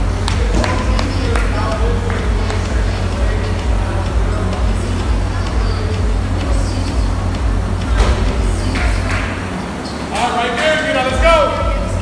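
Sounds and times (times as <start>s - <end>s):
rowing machine fan drone: 0.0s - 12.0s.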